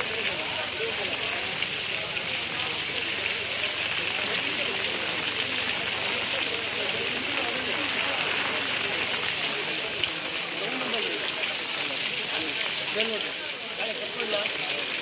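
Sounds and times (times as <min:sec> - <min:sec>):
faint voices murmuring: 0:00.0 - 0:15.0
steady rain falling: 0:00.0 - 0:15.0.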